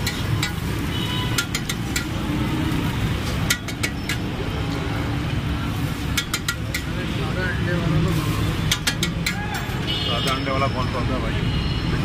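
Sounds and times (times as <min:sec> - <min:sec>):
metal spatula scraping on griddle: 0:00.0 - 0:04.4, 0:05.7 - 0:07.2, 0:08.0 - 0:09.5
street traffic: 0:00.0 - 0:12.0
voices: 0:00.0 - 0:12.0.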